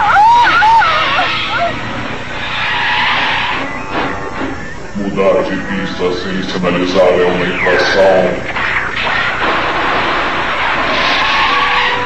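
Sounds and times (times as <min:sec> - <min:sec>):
car tyres screeching: 0:00.0 - 0:05.2, 0:07.7 - 0:12.0.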